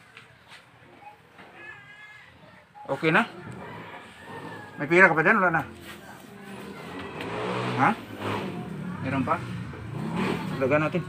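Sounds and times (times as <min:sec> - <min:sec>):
vehicle engine running: 0:03.5 - 0:11.0.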